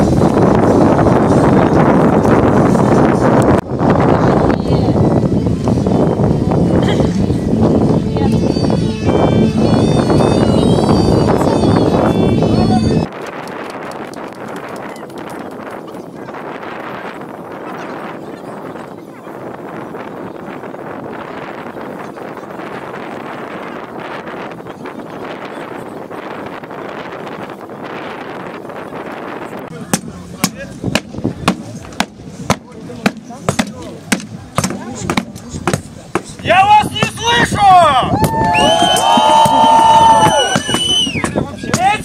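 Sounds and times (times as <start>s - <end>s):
wind noise on microphone: 0.0s - 42.0s
several voices shouting: 36.4s - 42.0s.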